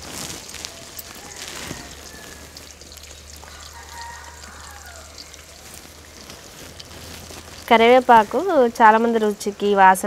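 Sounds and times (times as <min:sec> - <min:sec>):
oil sizzling in a pot: 0:00.0 - 0:10.0
chicken calling: 0:00.6 - 0:05.9.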